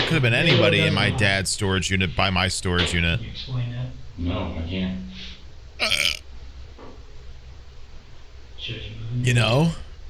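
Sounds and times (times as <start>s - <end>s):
man burping: 5.8s - 6.2s.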